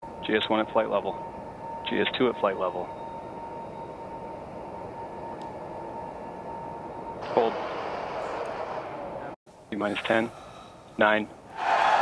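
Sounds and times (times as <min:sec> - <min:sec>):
steady background hiss: 0:00.1 - 0:12.0.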